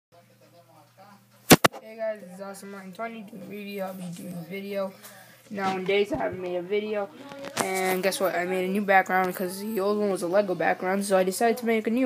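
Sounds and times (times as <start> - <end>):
sharp clicks: 1.5 - 1.8.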